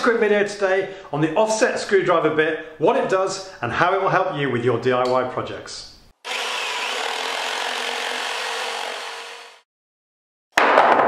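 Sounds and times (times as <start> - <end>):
wood being sawn: 6.2 - 9.7.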